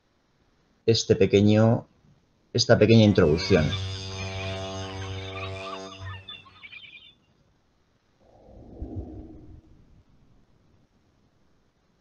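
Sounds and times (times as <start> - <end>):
chirping bird-like sounds: 3.3 - 7.3
soft sound: 8.2 - 10.5.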